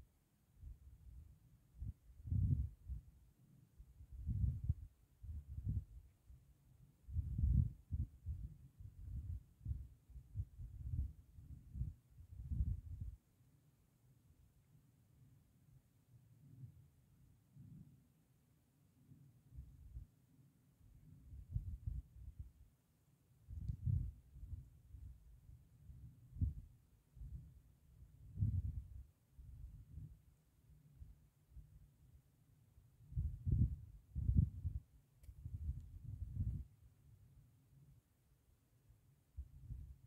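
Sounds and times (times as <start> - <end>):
wind buffeting microphone: 23.5 - 24.6, 33.2 - 34.8.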